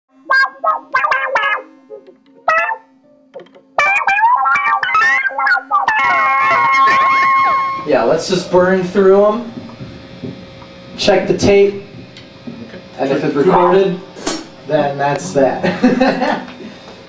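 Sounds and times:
electric guitar with effects: 0:00.1 - 0:12.4.

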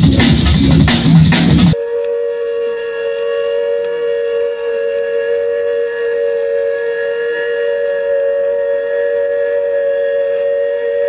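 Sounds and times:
electronic drone of held tones: 0:01.4 - 0:11.0.

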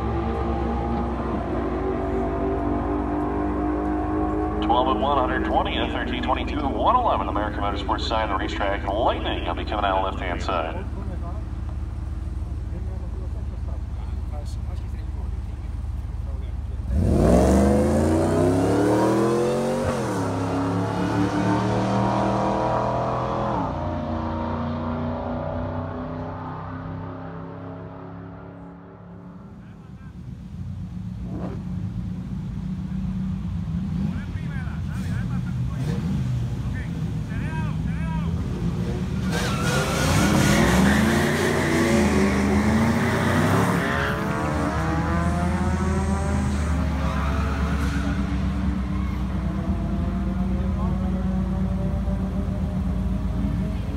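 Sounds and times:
engine accelerating with gear shifts: 0:00.0 - 0:53.9.

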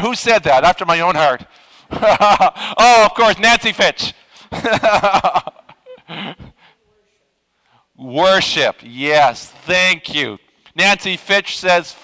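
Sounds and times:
man speaking: 0:00.0 - 0:02.1, 0:02.8 - 0:04.3, 0:07.9 - 0:12.0
man laughing: 0:01.9 - 0:03.2, 0:04.5 - 0:06.5.

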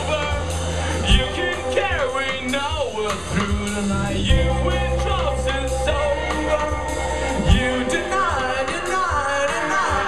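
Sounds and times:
live band guitars drums keyboards: 0:00.0 - 0:10.0
male singer's wordless vocal: 0:00.0 - 0:10.0.

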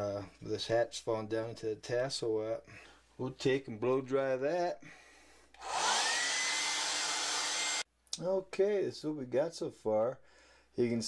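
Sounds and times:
hair dryer running: 0:05.6 - 0:07.8.

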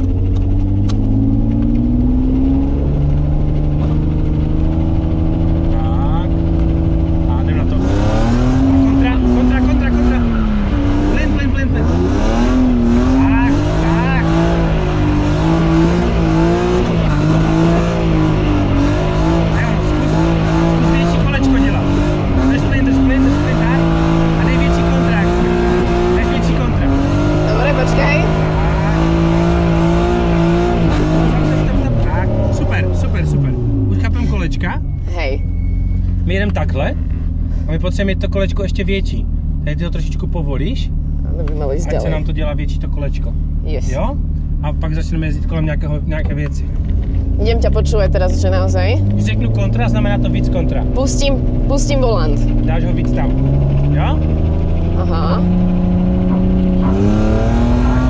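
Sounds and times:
car engine revving: 0:00.0 - 0:58.0
tyre squeal: 0:34.3 - 0:36.4.

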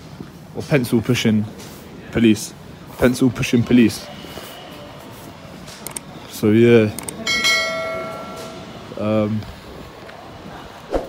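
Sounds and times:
bell-like metallic ring: 0:07.2 - 0:09.2.

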